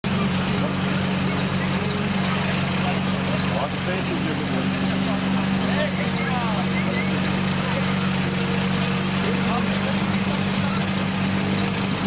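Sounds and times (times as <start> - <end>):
crowd voices: 0.0 - 12.0
small engine running steadily: 0.0 - 12.0.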